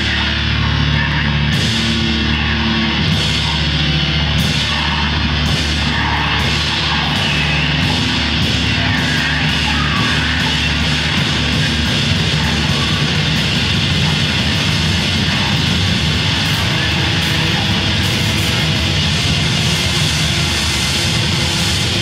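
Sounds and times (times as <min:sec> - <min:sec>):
distorted electric guitar: 0:00.0 - 0:22.0
drum kit: 0:00.0 - 0:22.0.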